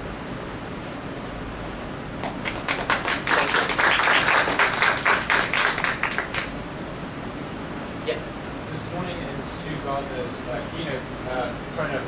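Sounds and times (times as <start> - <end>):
audience applauding: 2.2 - 6.6.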